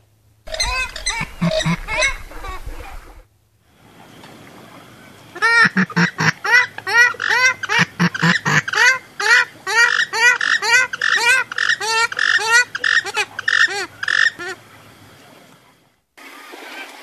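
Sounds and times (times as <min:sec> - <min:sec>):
waterfowl honking: 0:00.5 - 0:03.2, 0:05.4 - 0:14.9.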